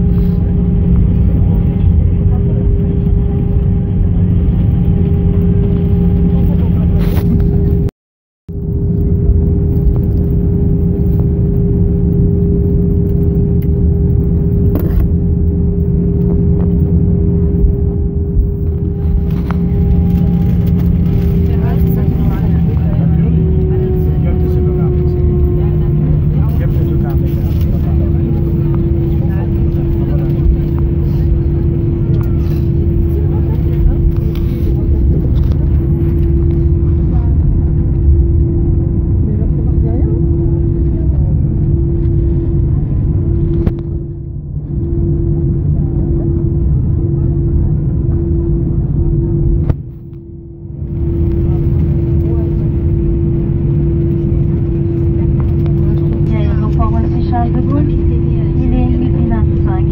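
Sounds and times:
jet cabin engine rumble: 0.0s - 7.9s, 8.5s - 59.9s.

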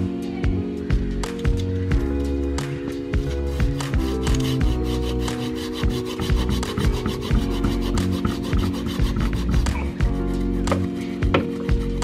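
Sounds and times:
background music: 0.0s - 12.0s
hand saw rasping through wood: 3.2s - 10.0s.

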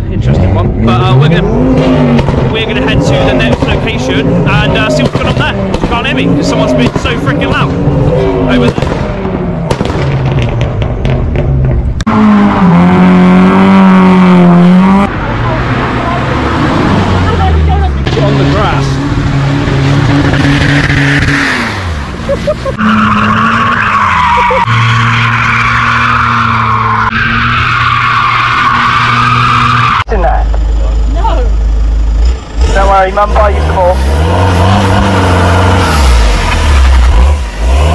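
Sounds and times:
car engines revving: 0.0s - 37.9s
tyre squeal: 22.7s - 30.1s.

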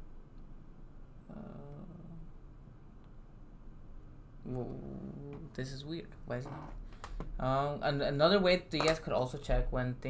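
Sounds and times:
faint room hum: 0.0s - 10.0s
man's hesitant uh: 1.3s - 2.3s.

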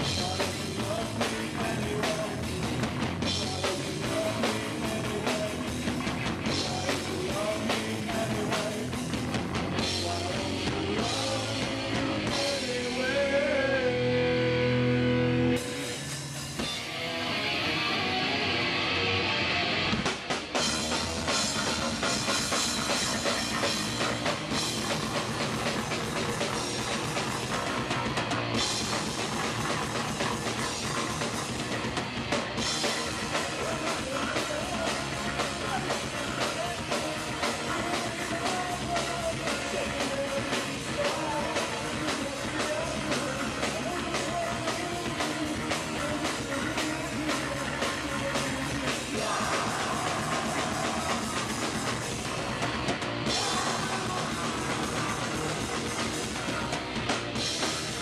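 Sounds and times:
drum kit: 0.0s - 58.0s
electric guitar: 0.0s - 58.0s
punk rock band playing: 0.0s - 58.0s.

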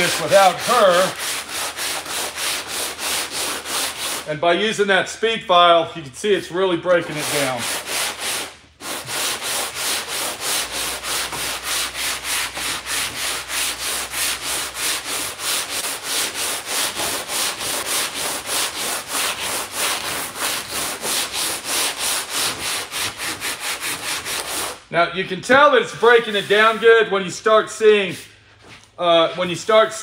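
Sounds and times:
sanding board rasping on filler: 0.0s - 4.3s, 6.9s - 24.9s, 26.0s - 27.1s.

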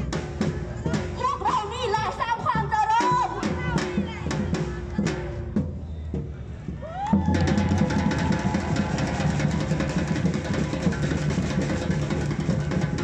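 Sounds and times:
marching drums fast rhythm: 0.0s - 13.0s.

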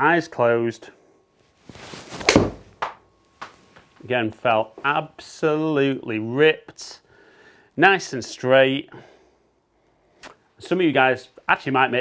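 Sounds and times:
golf club swishing: 1.6s - 2.8s
ball smacking projection screen: 2.2s - 3.6s.

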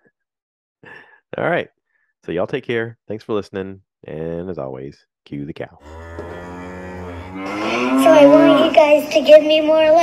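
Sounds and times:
cow mooing: 5.8s - 8.8s
child's voice: 7.5s - 10.0s.

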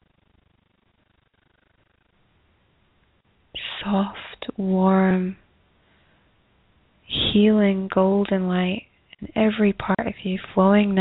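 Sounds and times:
woman's held voiced tone: 3.6s - 5.4s.

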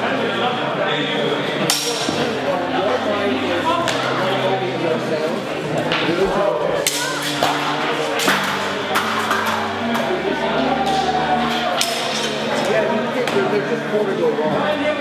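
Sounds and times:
voices in a hall: 0.0s - 15.0s.

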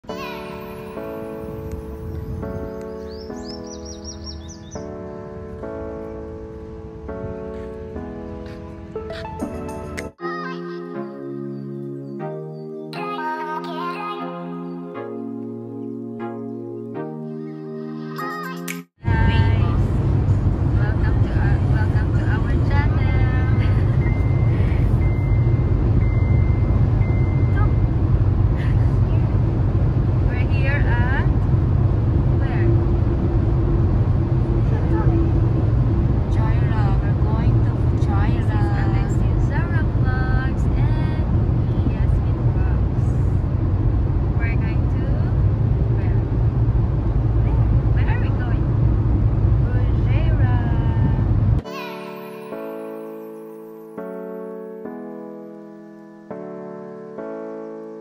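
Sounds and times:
car road and engine rumble: 19.0s - 51.6s
voices talking: 27.4s - 27.8s.

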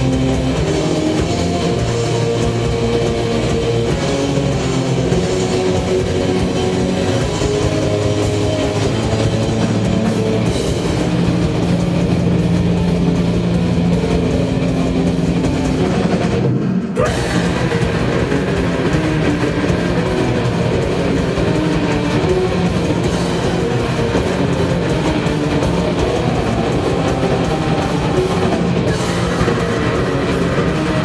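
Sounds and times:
metal band playing loud: 0.0s - 31.0s.

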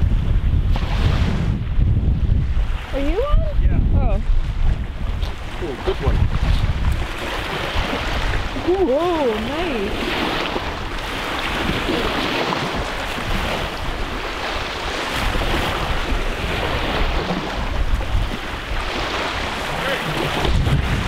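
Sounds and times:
small waves washing ashore: 0.0s - 21.0s
wind on microphone: 0.0s - 21.0s.

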